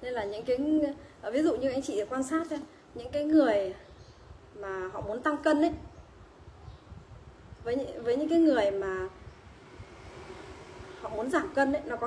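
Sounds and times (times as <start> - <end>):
low steady rumble: 4.3 - 12.0.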